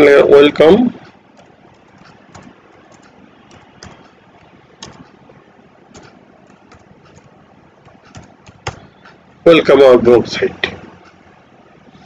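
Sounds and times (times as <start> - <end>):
steady low hiss: 0.0 - 12.0
keyboard key clicks: 1.4 - 4.1, 4.8 - 5.2, 5.9 - 8.9.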